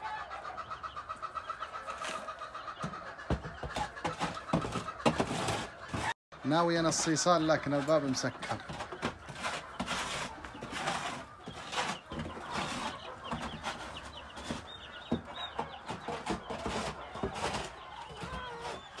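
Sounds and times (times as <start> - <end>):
chicks peeping: 0.0 - 19.0.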